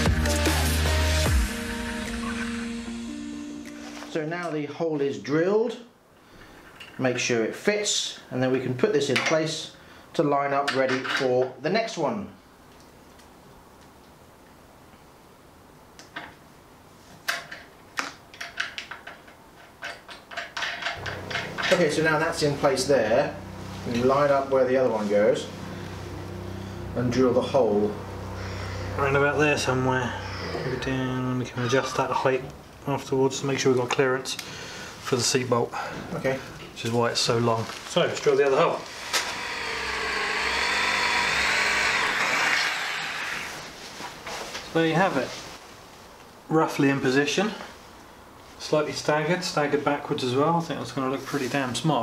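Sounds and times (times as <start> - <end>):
electric drill boring metal: 21.0 - 22.4, 38.8 - 43.7.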